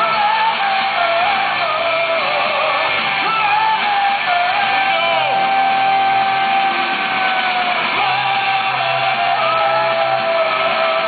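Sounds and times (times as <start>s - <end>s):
live punk rock band: 0.0s - 11.0s.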